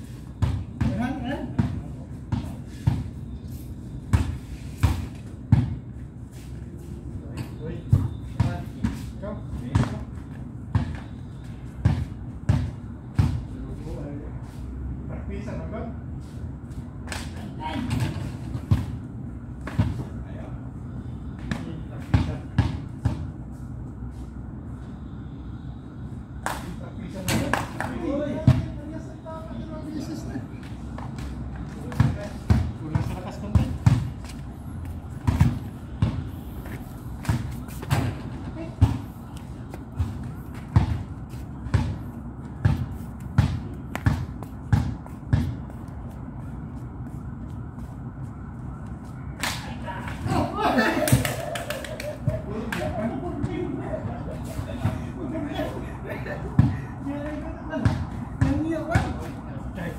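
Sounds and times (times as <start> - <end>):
basketball bouncing on concrete: 0.4 - 3.1, 4.1 - 5.8, 11.8 - 13.4, 35.2 - 36.3, 39.9 - 45.8, 57.8 - 59.3.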